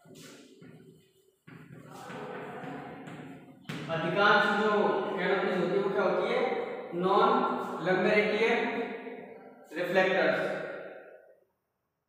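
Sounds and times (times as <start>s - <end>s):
chalk scratching on a blackboard: 0.0s - 3.6s.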